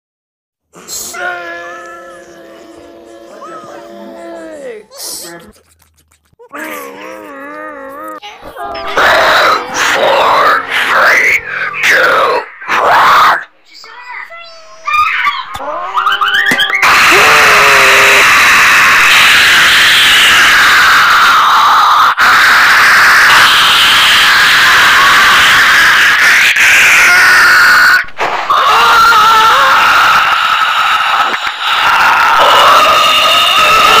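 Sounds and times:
distorted noise: 8.4s - 13.8s
wavering pitched tones: 14.7s - 16.8s.

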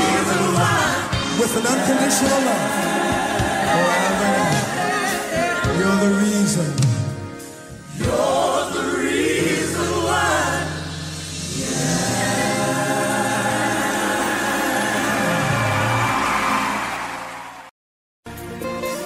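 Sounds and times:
gospel choir singing: 0.0s - 6.6s, 7.7s - 17.7s
band playing: 0.0s - 17.5s, 18.3s - 19.0s.

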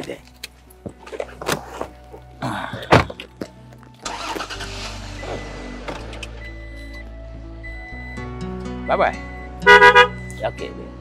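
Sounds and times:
background music: 0.0s - 11.0s
truck engine starting and running: 1.2s - 11.0s.

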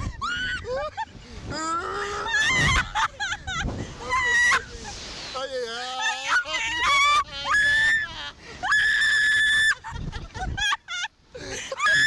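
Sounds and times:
people shrieking and laughing: 0.0s - 5.2s, 5.8s - 12.0s.

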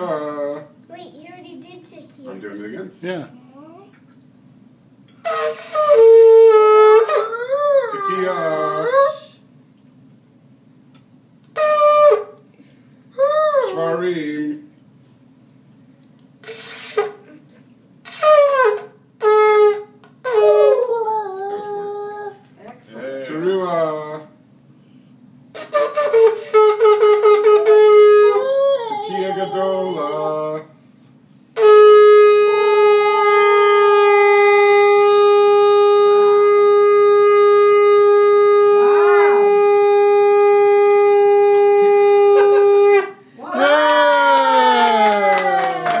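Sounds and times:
shofar blown weakly: 5.2s - 9.2s, 11.5s - 12.5s, 18.0s - 21.0s, 25.5s - 30.7s, 31.6s - 43.2s.

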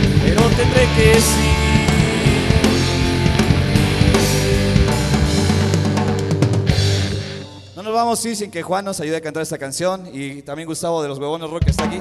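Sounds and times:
electric guitars: 0.0s - 7.8s
drum kit: 0.0s - 8.7s, 11.6s - 12.0s.

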